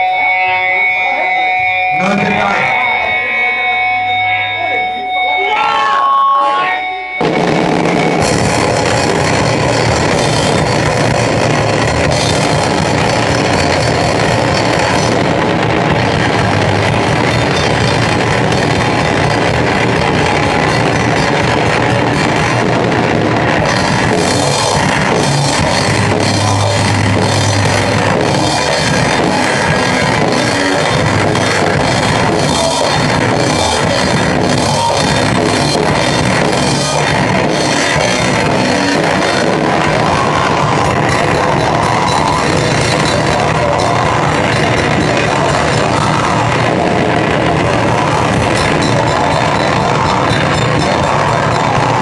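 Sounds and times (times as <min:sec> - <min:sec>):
drums: 0:00.0 - 0:52.0
live band with electric guitar: 0:00.0 - 0:52.0.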